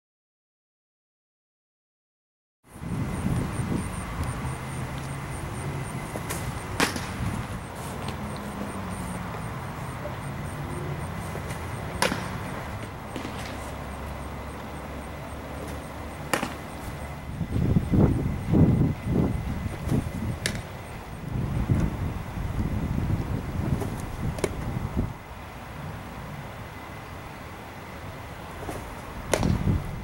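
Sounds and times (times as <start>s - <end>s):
baseball smacking into leather mitt: 6.1s - 7.2s, 11.4s - 12.4s, 15.6s - 16.7s, 23.8s - 24.6s, 28.6s - 29.7s.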